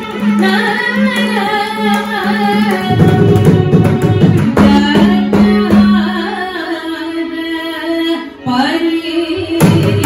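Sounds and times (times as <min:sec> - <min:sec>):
violin melody: 0:00.0 - 0:09.6
woman singing: 0:00.0 - 0:10.0.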